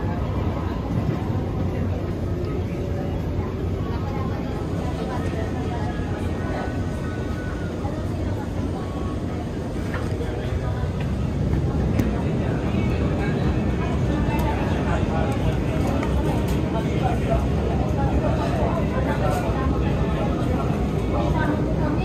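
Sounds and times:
metro train interior rumble: 0.0 - 22.0.

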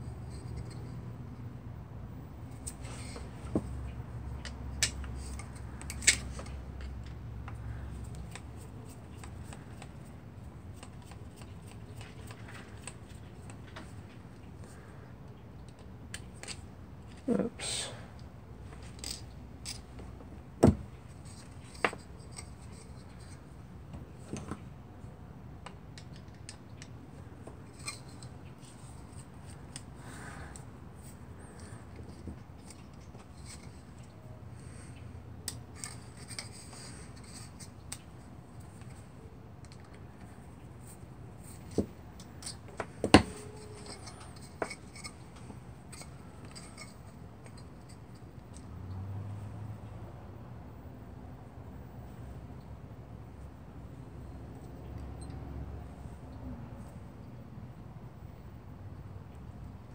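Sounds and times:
metal clicks and scraping of tools: 0.0 - 1.0, 2.5 - 17.2, 18.2 - 20.1, 20.9 - 23.5, 25.6 - 48.7.

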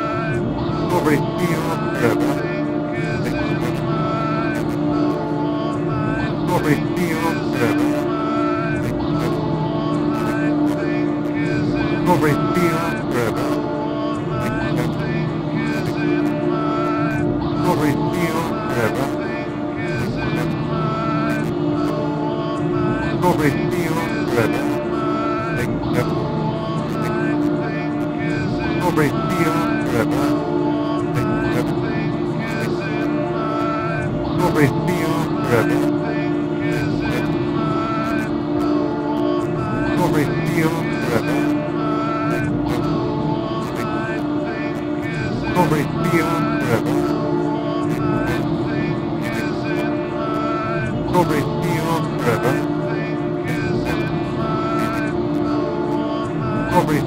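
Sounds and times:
low synthesizer drone: 0.0 - 57.0
noise bursts: 0.0 - 57.0.

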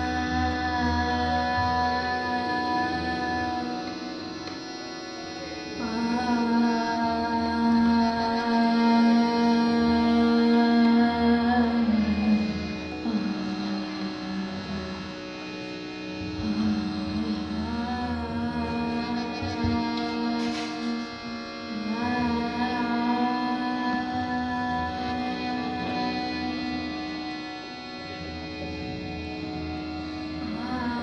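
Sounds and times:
harmonium holding low note: 0.0 - 31.0
sustained drone: 0.0 - 31.0.

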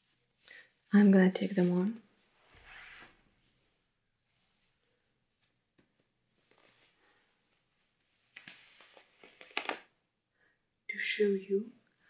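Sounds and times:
nylon tights rustling: 0.0 - 9.9.

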